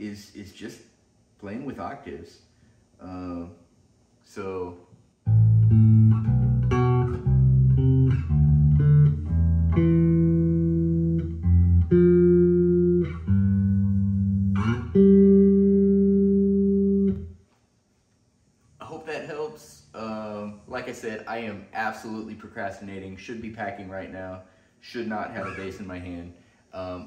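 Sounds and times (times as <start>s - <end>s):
electric bass guitar notes: 5.3s - 17.4s.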